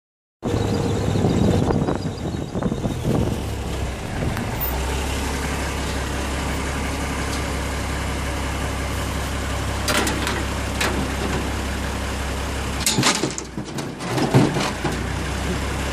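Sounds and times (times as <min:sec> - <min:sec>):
pickup truck engine running: 0:00.4 - 0:13.6.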